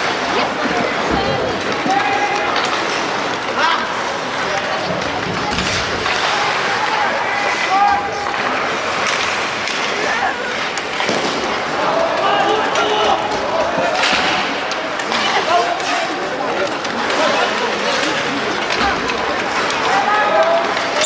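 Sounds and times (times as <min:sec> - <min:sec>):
skates scraping ice: 0:00.0 - 0:21.0
sticks and puck clacking: 0:00.0 - 0:21.0
players shouting: 0:00.8 - 0:21.0.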